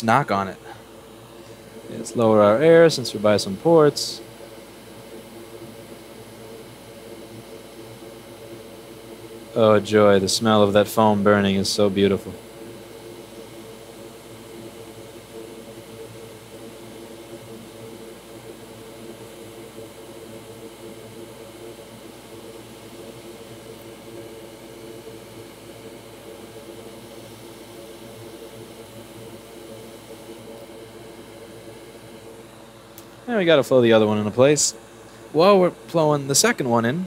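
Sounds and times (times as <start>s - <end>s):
hot air blower whirring: 0.0s - 4.5s, 5.5s - 12.6s, 21.8s - 37.0s.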